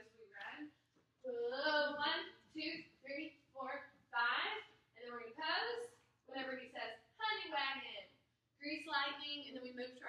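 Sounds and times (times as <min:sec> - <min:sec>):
woman speaking: 0:00.0 - 0:00.7, 0:01.3 - 0:10.0.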